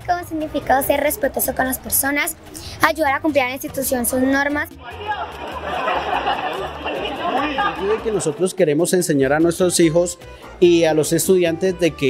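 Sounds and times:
people talking over one another: 0:00.0 - 0:08.5.

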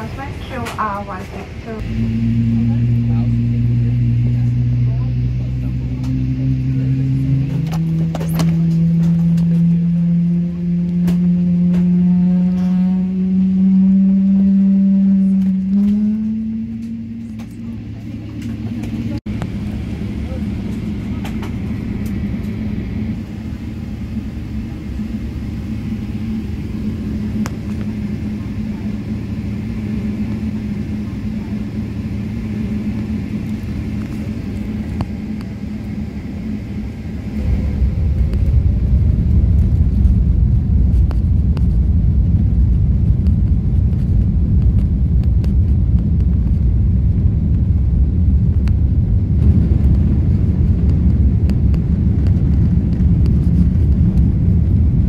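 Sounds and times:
jet engines from inside cabin: 0:00.0 - 0:55.0.

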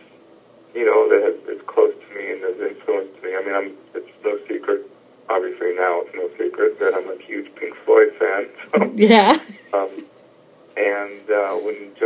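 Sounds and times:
man talking over a phone line: 0:00.8 - 0:09.0, 0:09.7 - 0:10.0, 0:10.8 - 0:12.0.

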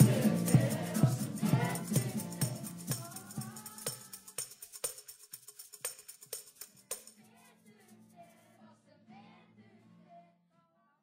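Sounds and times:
maraca and tambourine beat: 0:00.0 - 0:08.4.

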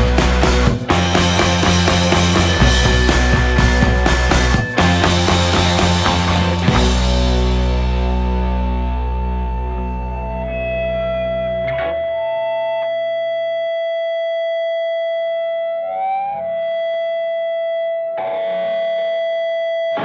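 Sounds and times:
electric guitar sustained note: 0:00.0 - 0:19.0
bass guitar: 0:00.0 - 0:20.0.

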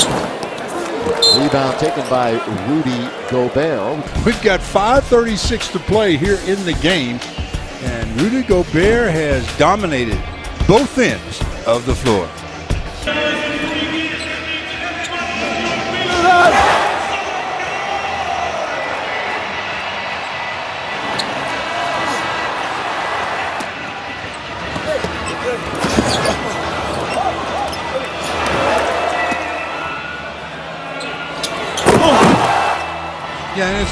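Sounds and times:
crowd murmur: 0:12.3 - 0:33.9.

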